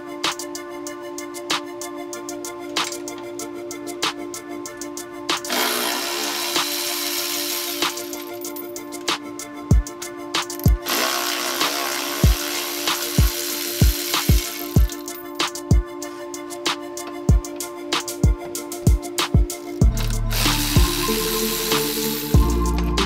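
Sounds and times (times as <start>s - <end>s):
hip-hop music: 0.0s - 23.0s
power tool spinning nuts: 5.5s - 8.5s, 10.5s - 15.1s, 19.9s - 22.9s.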